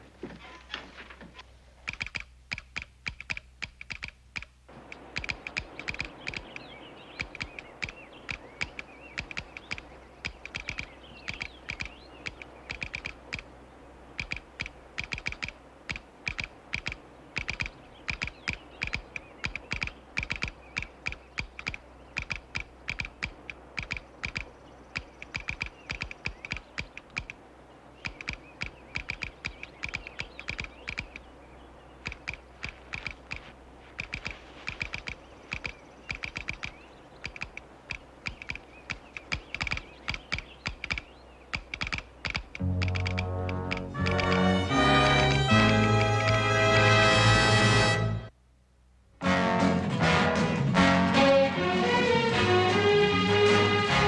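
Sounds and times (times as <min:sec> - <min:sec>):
telegraph clicking morse code: 0:38.2 - 0:44.6.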